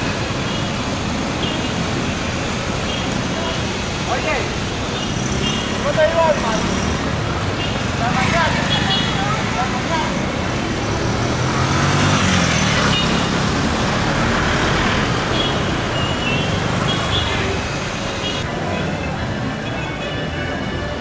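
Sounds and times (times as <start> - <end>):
traffic hum: 0.0 - 21.0.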